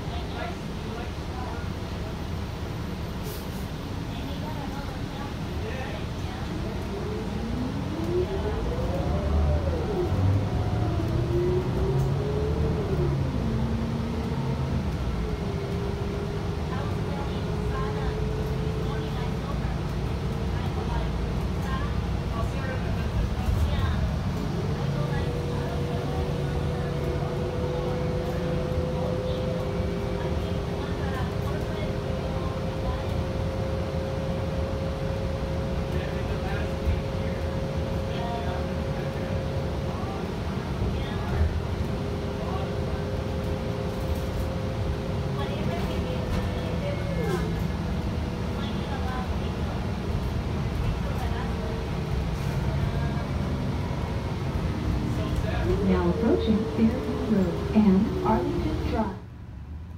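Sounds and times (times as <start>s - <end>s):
bus engine and road rumble: 0.0s - 59.9s
two-tone whine: 53.8s - 59.3s.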